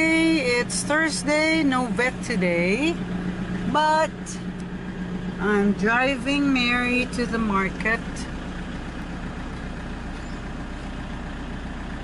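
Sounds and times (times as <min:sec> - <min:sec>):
van engine humming: 0:00.0 - 0:12.0.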